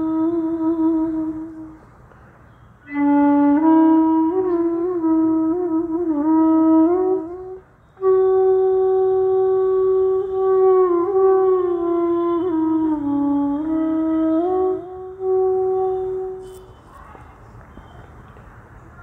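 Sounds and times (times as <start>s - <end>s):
solo flute melody: 0.0s - 1.9s, 2.5s - 17.0s.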